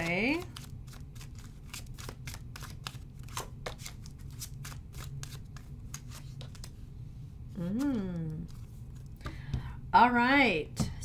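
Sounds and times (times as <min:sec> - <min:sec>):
cards being shuffled: 0:00.0 - 0:06.8, 0:07.6 - 0:09.2.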